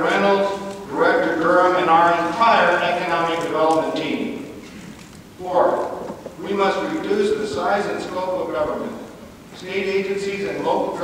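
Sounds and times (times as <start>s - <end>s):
man speaking: 0.0s - 4.5s, 5.4s - 11.0s.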